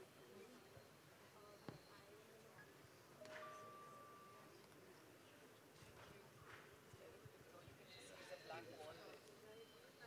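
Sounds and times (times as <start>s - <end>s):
faint steady tone: 0.0s - 5.6s.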